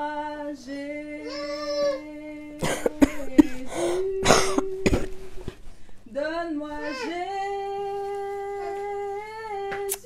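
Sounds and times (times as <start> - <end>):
woman coughing: 2.6 - 5.1.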